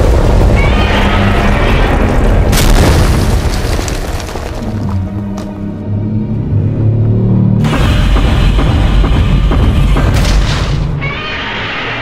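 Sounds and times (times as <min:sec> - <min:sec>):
booming explosion: 0:00.0 - 0:03.9
deep rumble: 0:00.0 - 0:11.0.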